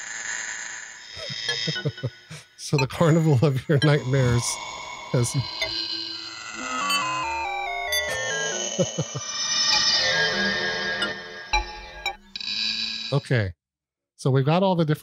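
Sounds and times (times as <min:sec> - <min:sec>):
warbling synthesizer tone cluster: 0:01.1 - 0:12.3
synthesizer notes stepping downward: 0:01.2 - 0:12.3.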